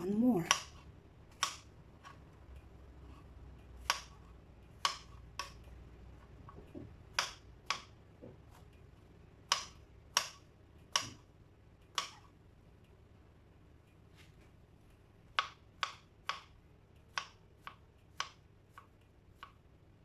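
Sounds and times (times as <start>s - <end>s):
knife chopping on plastic board: 0.2s - 2.2s, 3.0s - 8.7s, 9.4s - 11.2s, 11.9s - 12.2s, 15.3s - 19.6s.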